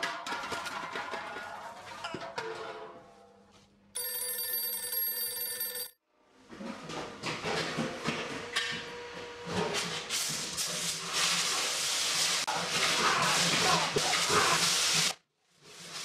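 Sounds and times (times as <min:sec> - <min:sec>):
bell ringing: 0:04.0 - 0:06.0
steam hissing: 0:10.2 - 0:15.2.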